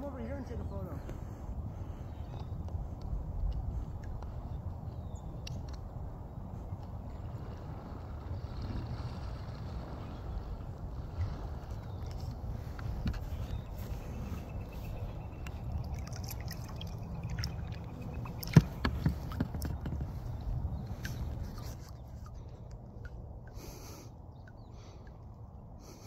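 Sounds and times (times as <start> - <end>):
low steady rumble: 0.0 - 26.0
light clicks: 5.4 - 5.9
water dripping and trickling: 13.7 - 20.2.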